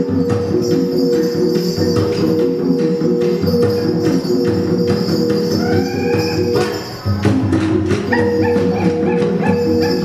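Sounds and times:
gong and drum ensemble music: 0.0s - 10.0s.

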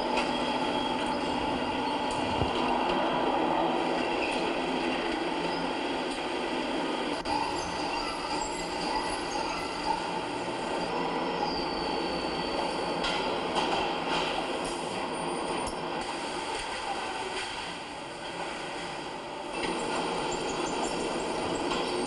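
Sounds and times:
factory machinery clatter and rumble: 0.0s - 22.0s.

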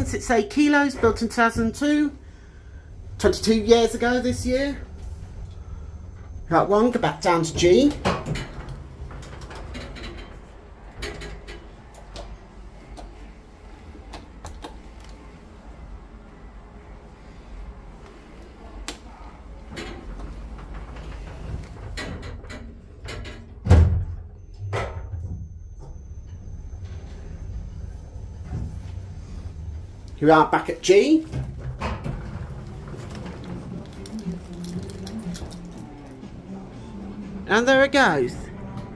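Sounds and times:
sliding lift doors closing: 2.6s - 37.4s
lift car humming: 25.4s - 38.9s.

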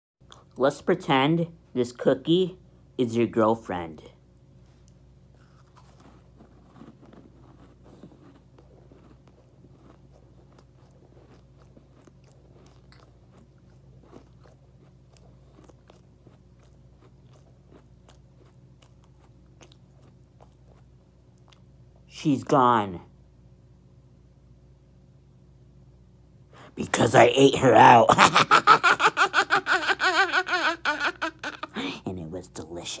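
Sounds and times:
person chewing cookie: 0.2s - 0.6s, 4.4s - 22.1s
steady low hum: 0.2s - 33.0s.

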